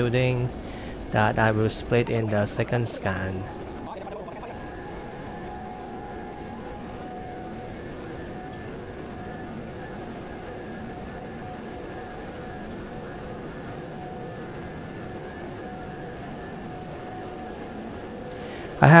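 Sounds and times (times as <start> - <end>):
faint whining tones: 0.0 - 19.0
industrial machinery hum: 0.0 - 19.0.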